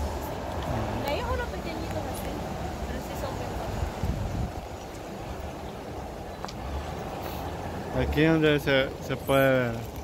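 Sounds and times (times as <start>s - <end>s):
wind buffeting microphone: 0.0s - 8.5s.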